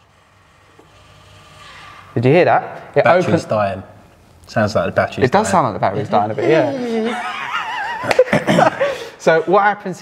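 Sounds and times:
electric actuator whirring: 0.0 - 2.4.

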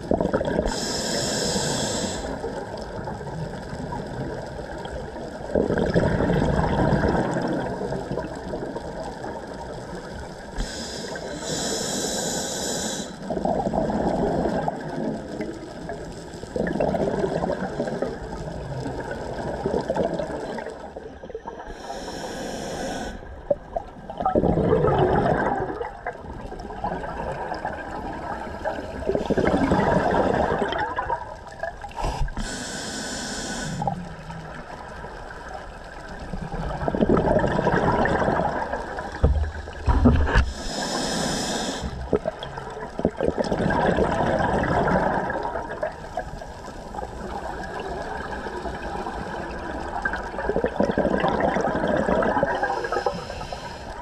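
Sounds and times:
exhaled bubbles rushing: 0.0 - 0.8, 2.5 - 10.5, 13.2 - 21.0, 23.4 - 32.0, 36.0 - 40.6, 41.9 - 53.2
regulator inhalation hissing: 0.7 - 2.4, 10.6 - 13.2, 21.7 - 23.3, 32.0 - 34.0, 40.5 - 42.0, 52.6 - 54.0.

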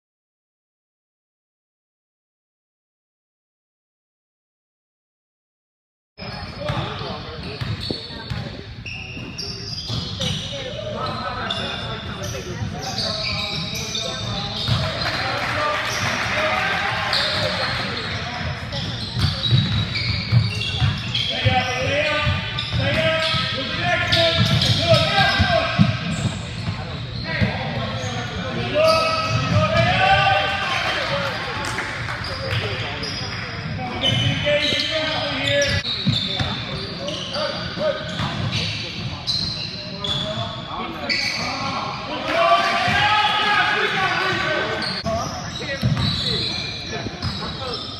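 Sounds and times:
people calling out in a hall: 41.4 - 45.1.

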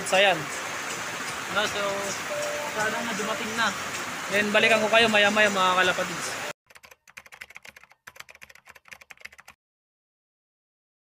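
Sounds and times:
keyboard key clicks: 6.7 - 9.6.

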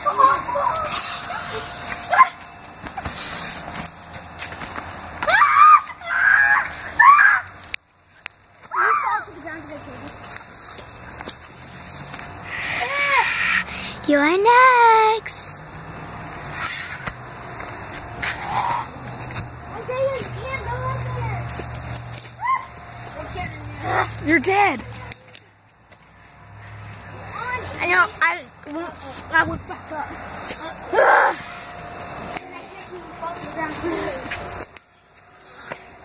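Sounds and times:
footsteps through dry leaves: 8.4 - 13.1, 16.8 - 28.0.

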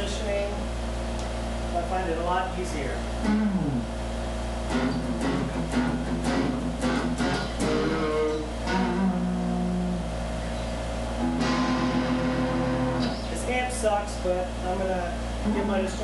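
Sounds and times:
amp low hum: 0.0 - 16.0
clean electric guitar: 3.2 - 16.0.

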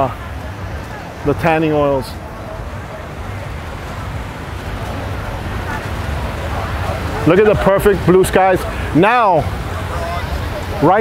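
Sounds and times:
ocean surf: 0.0 - 11.0.

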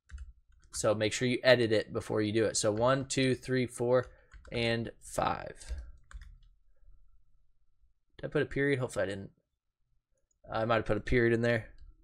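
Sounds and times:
faint keyboard keystrokes: 5.6 - 6.5.

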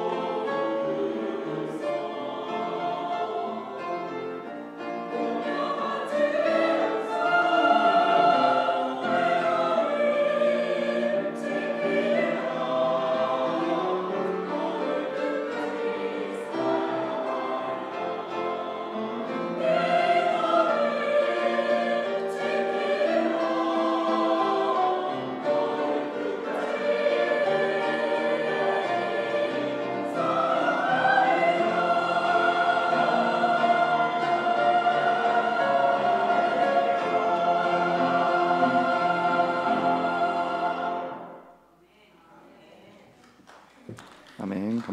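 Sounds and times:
piano accompaniment: 0.0 - 41.5
choir singing a hymn: 0.0 - 43.2.

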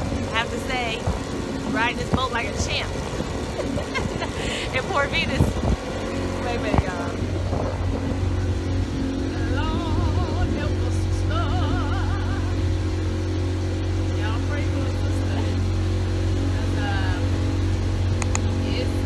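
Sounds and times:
motorboat engine droning: 0.0 - 19.0
wavering singing-like voice: 9.2 - 13.2.

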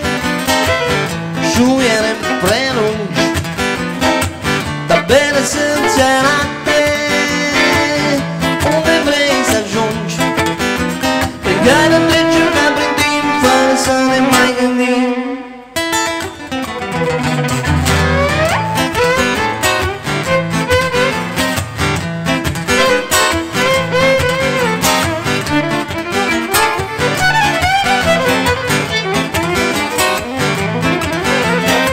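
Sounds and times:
acoustic guitar accompaniment: 0.0 - 31.9
violin melody with slides: 0.5 - 1.1, 11.4 - 15.6, 16.6 - 21.6, 22.7 - 31.9.

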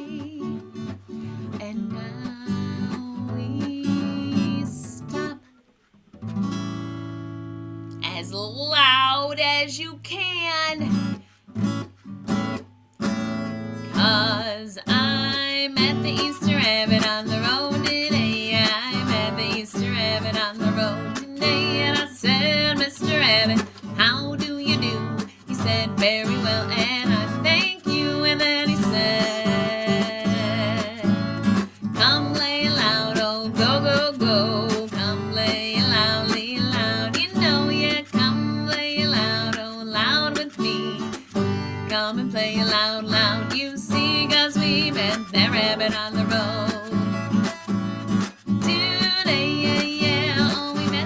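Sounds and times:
woman singing: 0.0 - 5.5, 8.0 - 11.2, 13.8 - 51.0
acoustic guitar strumming: 6.1 - 8.7, 10.8 - 51.0.

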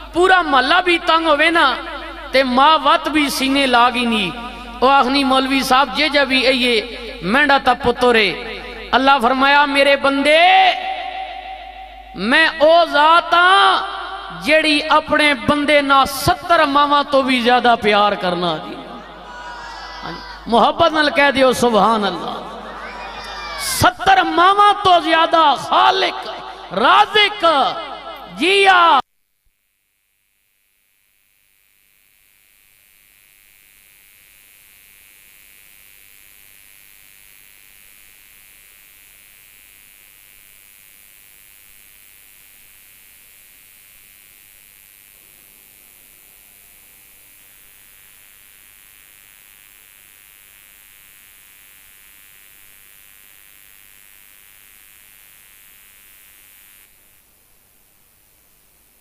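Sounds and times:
faint static hiss: 29.1 - 59.0.

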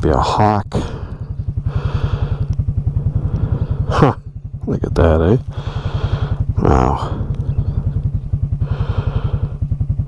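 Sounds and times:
atv engine idling: 0.0 - 10.0.

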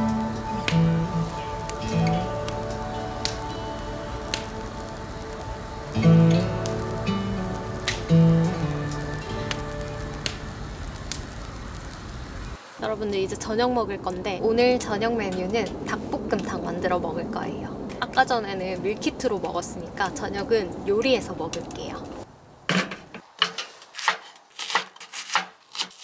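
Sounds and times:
soft background music: 0.0 - 11.9
firewood crackling and popping: 0.0 - 26.0.

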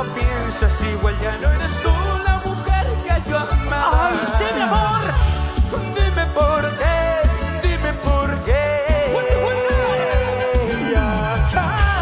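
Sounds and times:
band playing a romantic song: 0.0 - 12.0.

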